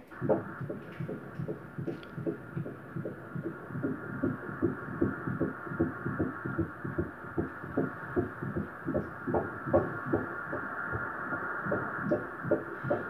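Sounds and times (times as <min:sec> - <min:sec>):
steady hiss: 0:00.0 - 0:13.0
ultrasound heartbeat whooshing: 0:00.0 - 0:13.0.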